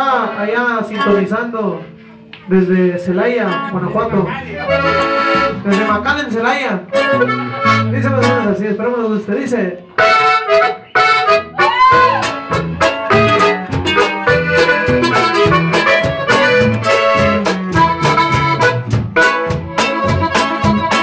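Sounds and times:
acoustic guitar: 0.0 - 21.0
electric bass: 0.8 - 21.0
button accordion melody: 3.5 - 6.3, 6.9 - 8.5, 10.0 - 21.0
drums keeping a steady beat: 10.0 - 21.0.

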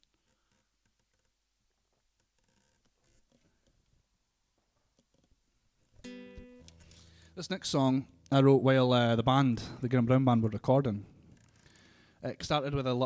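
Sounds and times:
acoustic guitar ringing: 6.0 - 9.4.

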